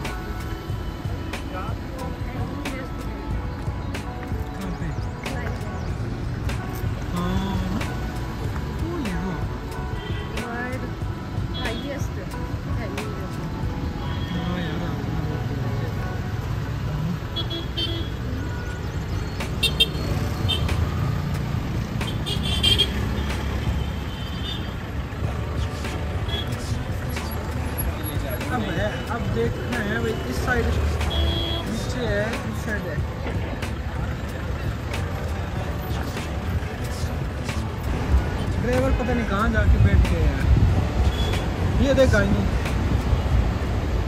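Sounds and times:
people's voices: 0:00.0 - 0:44.0
vehicle engines running: 0:00.0 - 0:44.0
car horn toots: 0:31.0 - 0:31.8.

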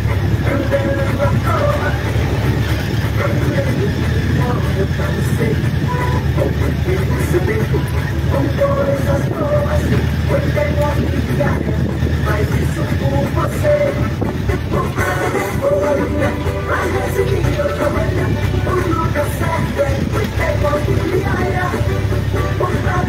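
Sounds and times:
faint voices: 0:00.0 - 0:23.0
motorcycle riding over cobblestones: 0:00.0 - 0:23.0.

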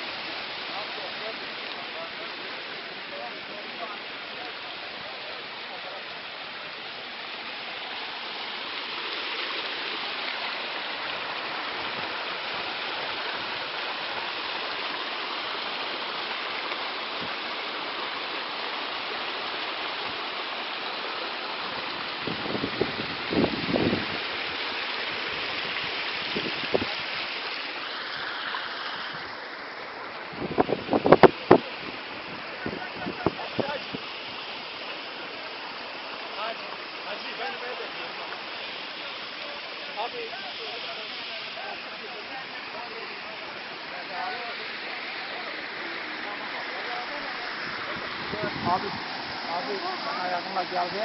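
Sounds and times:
rushing stream water: 0:00.0 - 0:51.0.

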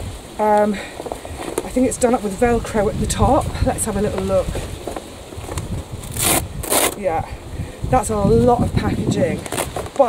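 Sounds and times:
velcro ripping apart: 0:05.6 - 0:07.0.

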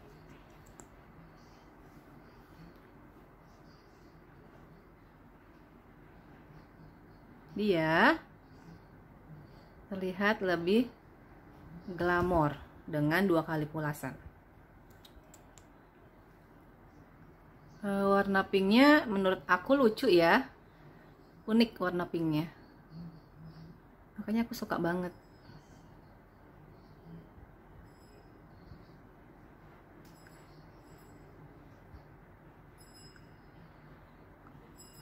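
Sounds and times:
faint small clicks: 0:00.3 - 0:01.0, 0:14.8 - 0:15.8.

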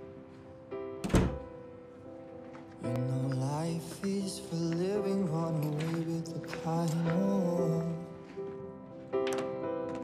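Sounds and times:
soft background music: 0:00.0 - 0:10.0
wooden door shutting: 0:01.0 - 0:01.6
person singing: 0:02.8 - 0:08.4.

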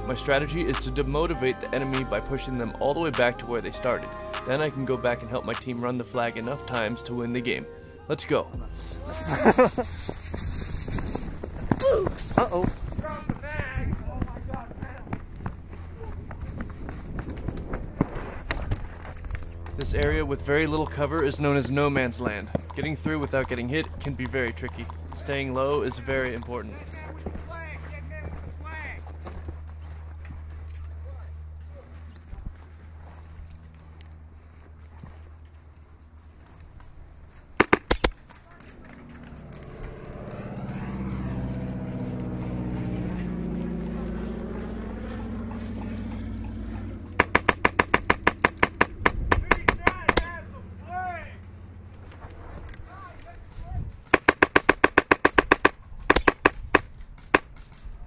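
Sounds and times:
voices shouting: 0:08.6 - 0:09.6, 0:49.8 - 0:51.5
airsoft rifle firing bursts: 0:37.6 - 0:38.2, 0:47.2 - 0:50.3, 0:54.1 - 0:57.5.

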